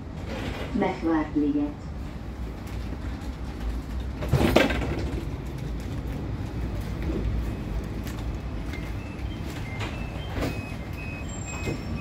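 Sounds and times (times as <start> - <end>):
tram rumbling: 0.0 - 12.0
loud clatter: 4.2 - 5.4.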